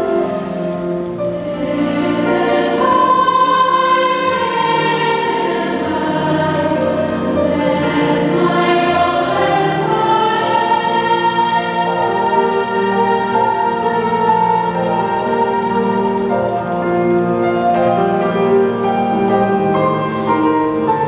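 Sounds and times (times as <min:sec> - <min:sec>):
piano accompaniment: 0:00.0 - 0:21.0
treble choir singing held notes: 0:00.0 - 0:21.0.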